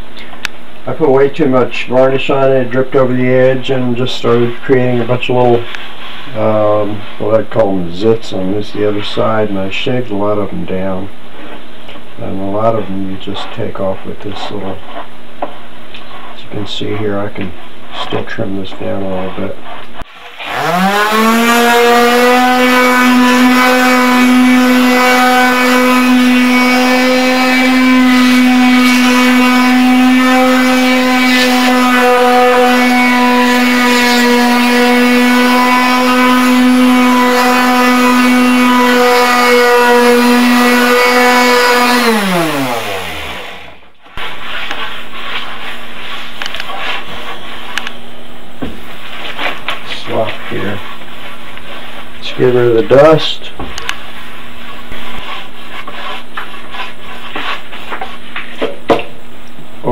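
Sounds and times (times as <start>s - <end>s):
electric sander running: 20.1s - 48.0s.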